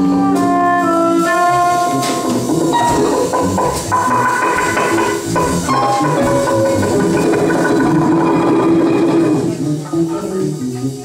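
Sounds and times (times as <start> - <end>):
electric guitars bass and violin jam: 0.0 - 11.0.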